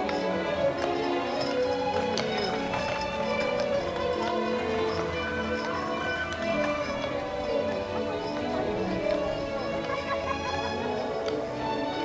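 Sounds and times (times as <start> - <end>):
cheerful music: 0.0 - 12.0
horse hooves clip-clopping: 0.0 - 12.0.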